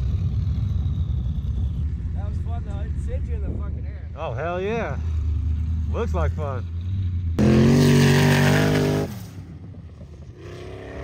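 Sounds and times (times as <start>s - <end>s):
off-road vehicle engine revving: 0.0s - 9.4s, 10.1s - 11.0s.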